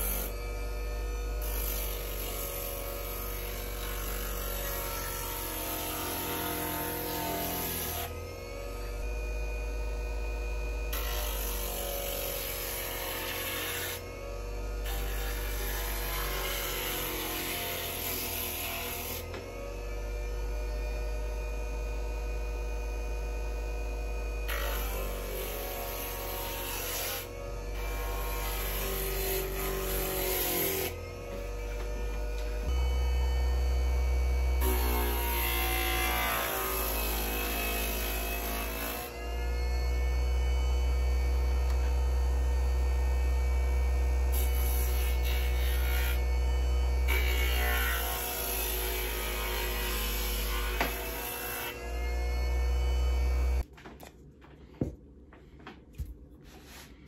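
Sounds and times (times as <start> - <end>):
electric motor humming: 0.0 - 53.6.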